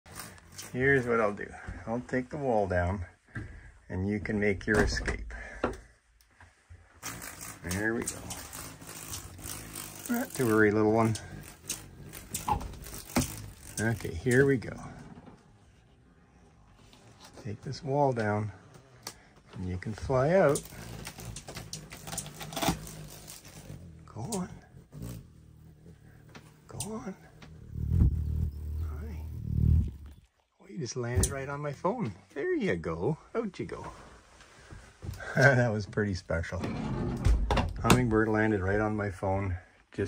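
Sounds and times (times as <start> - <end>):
faint irregular clicks: 5.6 - 15.4
curtain fabric rustling: 6.8 - 15.9, 19.6 - 30.3
hummingbird wingbeats humming: 7.0 - 15.0, 19.9 - 30.3.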